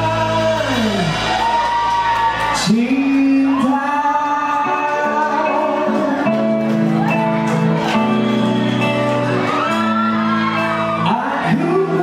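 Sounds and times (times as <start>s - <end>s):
man singing through speakers: 0.0s - 1.3s, 2.5s - 6.6s, 11.0s - 12.0s
live band playing: 0.0s - 12.0s
crowd shouting along: 6.9s - 12.0s.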